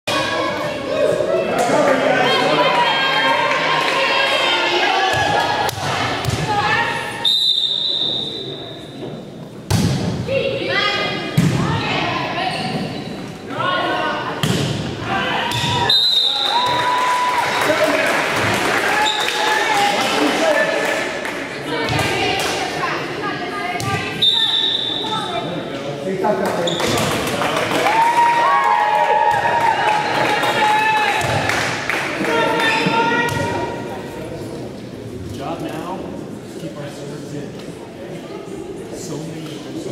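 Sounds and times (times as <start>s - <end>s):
referee's whistle: 7.2s - 8.5s, 15.6s - 16.8s, 24.2s - 25.3s.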